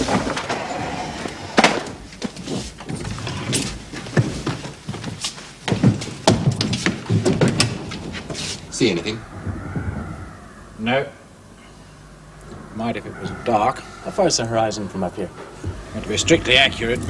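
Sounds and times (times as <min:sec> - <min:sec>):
knocks and shuffling: 0:00.0 - 0:10.4, 0:14.8 - 0:17.0
men talking indistinctly: 0:08.7 - 0:09.3, 0:12.8 - 0:17.0.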